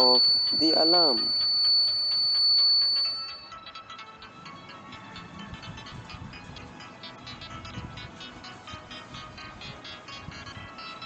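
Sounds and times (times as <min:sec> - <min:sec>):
high-pitched buzzer tone: 0:00.0 - 0:03.6
background music with beat: 0:00.0 - 0:11.0.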